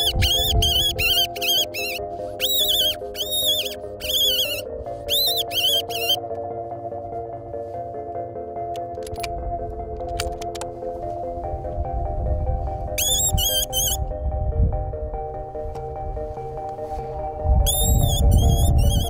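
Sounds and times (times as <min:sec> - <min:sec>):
fox caller squealing: 0:00.0 - 0:06.2, 0:13.0 - 0:14.0
background music with held tones: 0:00.0 - 0:19.0.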